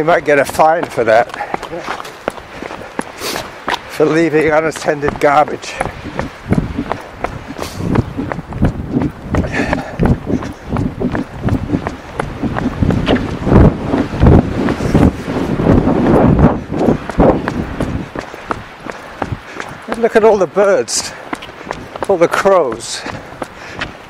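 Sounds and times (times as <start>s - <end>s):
running footsteps: 0.0s - 24.0s.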